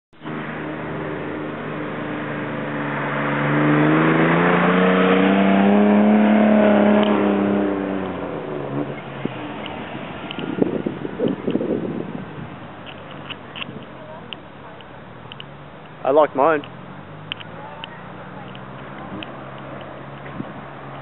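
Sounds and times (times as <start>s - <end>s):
car driving past: 0.2s - 12.6s.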